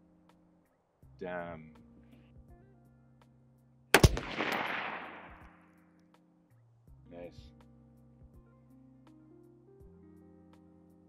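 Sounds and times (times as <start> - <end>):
rifle shot with echo: 4.0 - 5.6.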